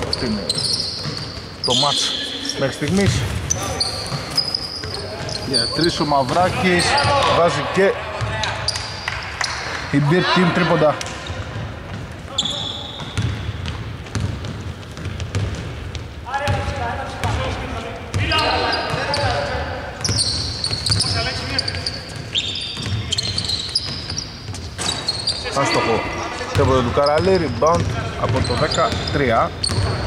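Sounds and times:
sneaker squeaks: 0.0s - 9.9s, 11.0s - 16.6s, 18.1s - 30.0s
players calling out: 0.0s - 11.5s, 16.2s - 24.2s
basketball dribbling: 13.0s - 17.4s, 20.0s - 25.0s.

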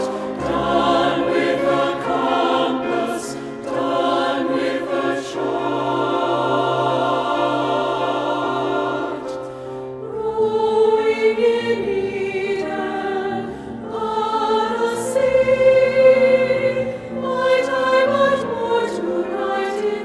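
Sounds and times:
choir singing held chords: 0.0s - 20.0s.

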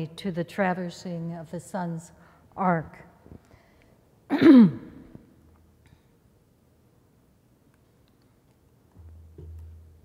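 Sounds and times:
woman clearing her throat: 4.3s - 5.1s.

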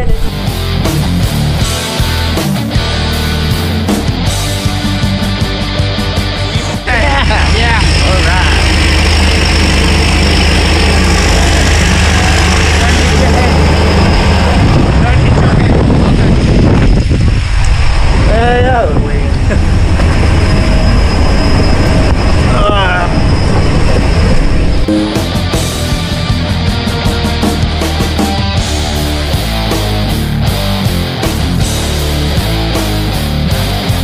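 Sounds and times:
propeller engines running: 0.0s - 34.0s.

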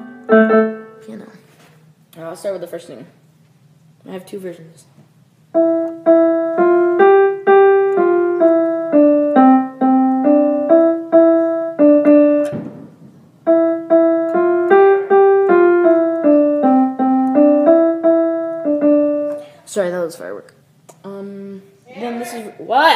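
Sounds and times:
piano playing a simple melody: 0.0s - 1.2s, 5.5s - 19.4s.

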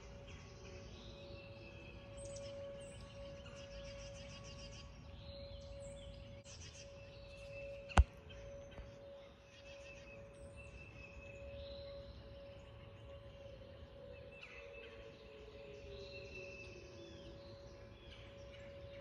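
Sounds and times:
distant warning sirens: 0.0s - 19.0s.

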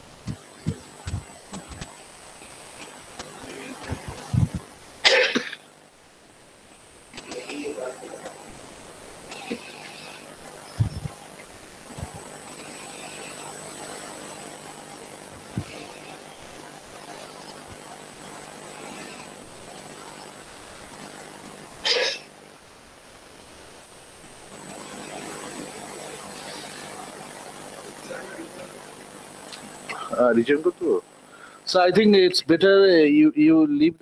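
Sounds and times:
sharp cough: 5.0s - 5.7s, 21.8s - 22.3s.

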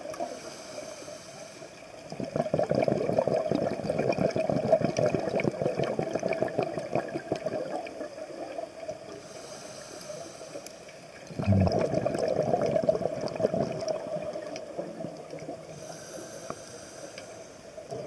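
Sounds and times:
underwater bubbling and gurgling: 0.0s - 18.0s.

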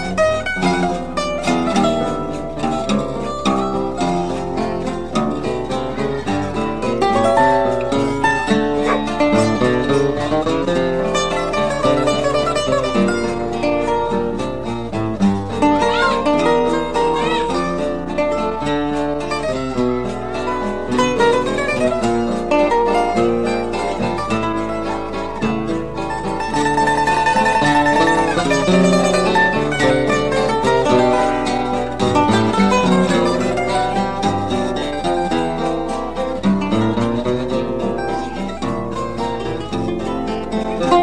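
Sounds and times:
acoustic guitar accompaniment: 0.0s - 41.0s
cavaquinho melody: 0.0s - 41.0s.

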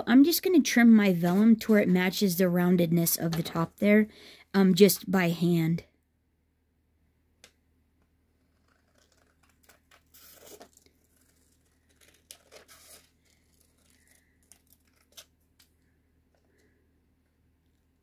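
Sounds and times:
paper sheet crinkling: 8.4s - 16.7s.

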